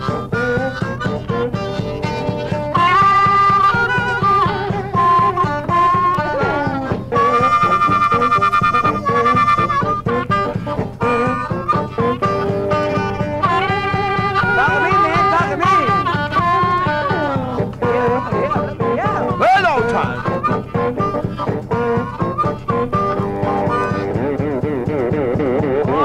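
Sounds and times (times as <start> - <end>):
blues guitar: 0.0 - 26.0
harmonica wavering held notes: 0.0 - 26.0
steady drum beat: 0.0 - 26.0.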